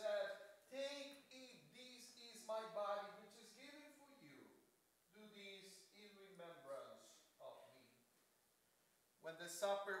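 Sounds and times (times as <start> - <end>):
man speaking quietly: 0.0 - 8.0.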